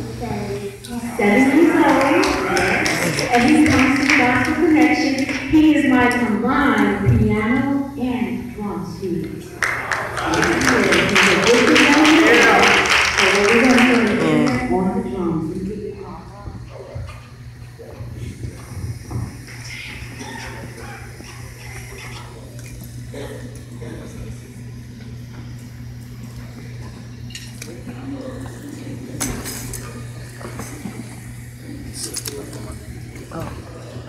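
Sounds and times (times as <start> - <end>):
faint voices: 0.0 - 34.0
steady low hum: 0.0 - 34.0.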